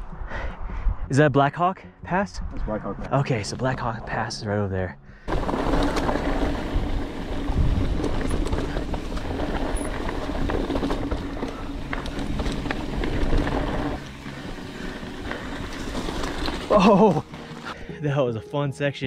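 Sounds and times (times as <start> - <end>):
bike rattling and clicking: 5.3 - 17.8
tyres rumbling on dirt: 5.3 - 17.8.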